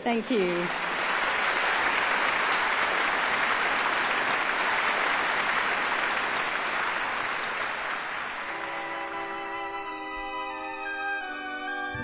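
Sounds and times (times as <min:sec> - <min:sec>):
large audience applauding: 0:00.0 - 0:11.9.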